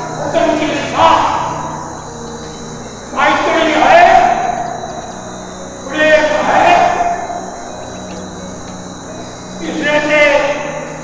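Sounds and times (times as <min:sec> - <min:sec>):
man speaking over public address: 0:00.0 - 0:01.8, 0:03.1 - 0:04.9, 0:05.8 - 0:07.6, 0:09.6 - 0:11.0
thin steady high tone: 0:00.0 - 0:11.0.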